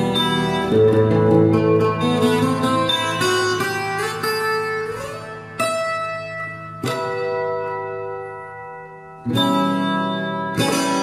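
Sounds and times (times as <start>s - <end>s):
plucked string chords: 0.0s - 11.0s.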